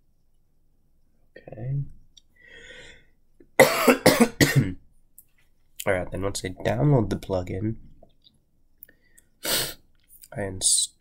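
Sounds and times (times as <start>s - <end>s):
faint breathy sound: 2.3s - 3.2s
person coughing: 3.6s - 4.8s.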